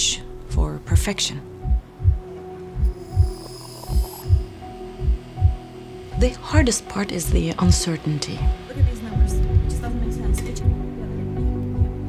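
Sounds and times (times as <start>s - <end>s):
heartbeat-like double thump: 1.6s - 5.6s
steady humming drone: 1.6s - 12.0s
faint high shimmer: 2.9s - 4.4s.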